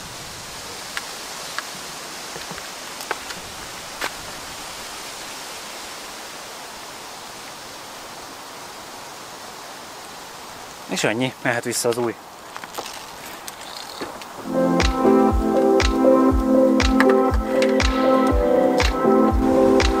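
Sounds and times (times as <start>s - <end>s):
outdoor background hiss: 0.0s - 20.0s.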